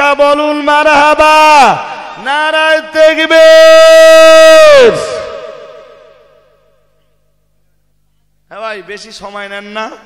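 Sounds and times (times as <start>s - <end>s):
man shouting through microphone: 0.0s - 6.2s.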